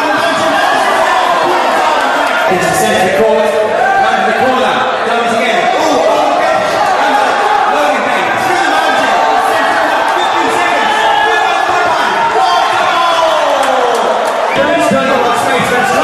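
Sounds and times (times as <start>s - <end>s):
crowd noise in a large hall: 0.0s - 16.0s
shouting voices: 0.0s - 16.0s.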